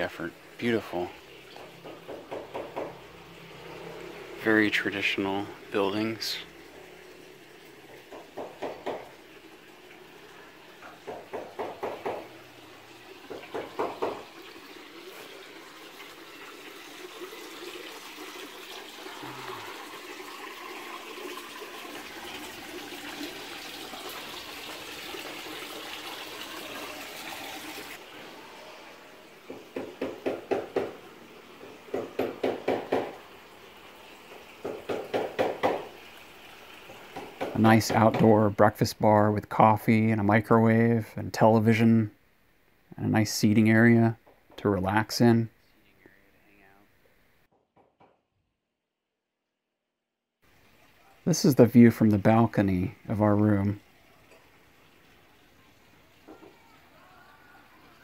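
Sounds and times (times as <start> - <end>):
water splashing into pond: 6.6 - 37.6.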